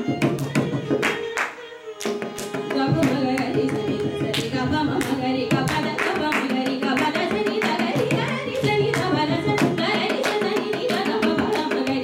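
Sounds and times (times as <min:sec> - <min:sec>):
violin: 0:00.0 - 0:12.0
woman singing: 0:02.5 - 0:12.0.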